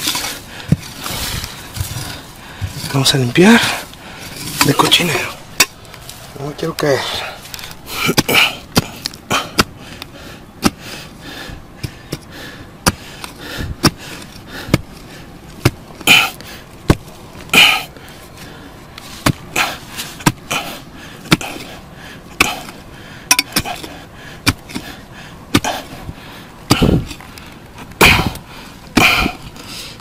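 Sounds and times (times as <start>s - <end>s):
digging tool knocking soil: 0.0s - 6.0s, 6.6s - 10.8s, 11.8s - 17.8s, 19.0s - 25.9s, 26.6s - 29.4s
digging tool scraping soil: 0.0s - 9.8s, 11.8s - 26.0s.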